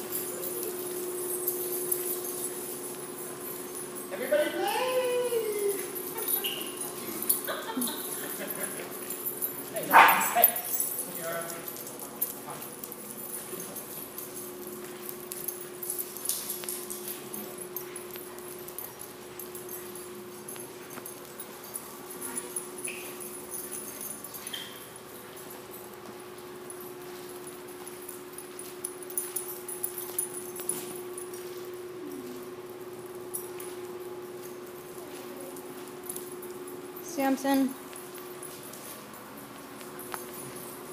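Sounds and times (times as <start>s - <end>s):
steady low hum: 0.0s - 40.9s
dogs barking and yipping: 0.2s - 25.3s.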